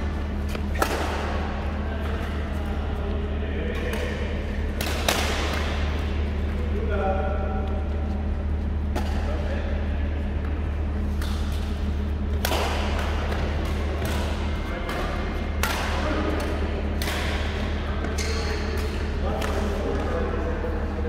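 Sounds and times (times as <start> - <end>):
steady low hum: 0.0 - 21.0
shuttlecock hit by rackets: 0.5 - 1.4, 4.7 - 5.9, 12.3 - 19.6.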